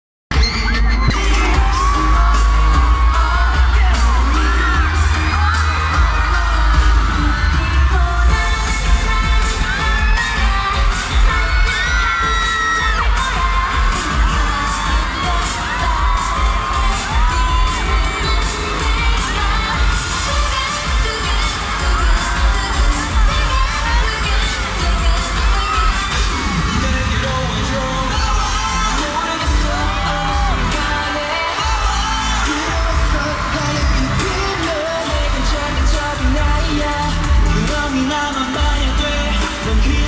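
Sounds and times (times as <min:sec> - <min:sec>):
crowd cheering and screaming: 0:00.3 - 0:40.0
person singing: 0:00.3 - 0:40.0
pop music with heavy bass: 0:00.3 - 0:40.0.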